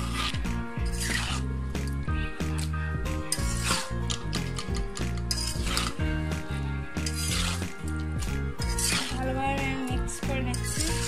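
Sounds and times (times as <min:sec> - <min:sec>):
metal spatula scraping a pan: 0:00.0 - 0:09.8, 0:10.4 - 0:11.0
background music: 0:00.0 - 0:11.0.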